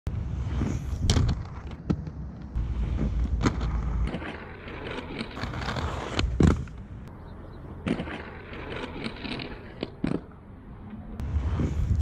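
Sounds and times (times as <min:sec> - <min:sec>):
skate wheels rolling on concrete: 0:00.1 - 0:12.0.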